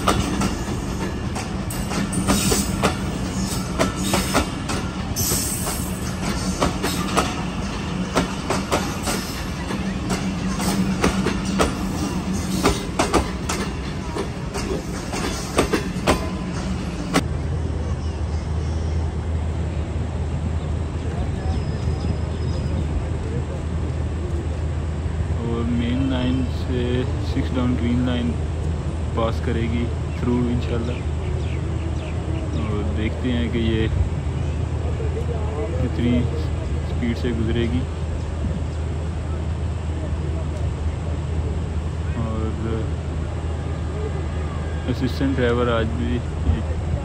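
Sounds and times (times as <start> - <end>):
diesel locomotive engine droning: 0.0 - 47.0
low station rumble: 0.0 - 47.0
man talking: 25.4 - 28.4, 29.1 - 31.0, 32.6 - 34.0, 35.8 - 37.9, 42.1 - 43.0, 44.8 - 46.8.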